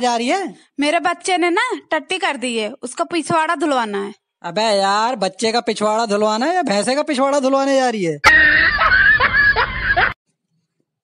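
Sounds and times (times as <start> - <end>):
high-pitched wailing cry: 8.2 - 10.1.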